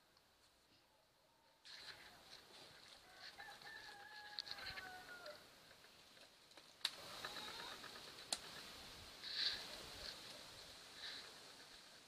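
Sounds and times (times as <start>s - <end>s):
faint rooster crowing: 2.9s - 5.6s.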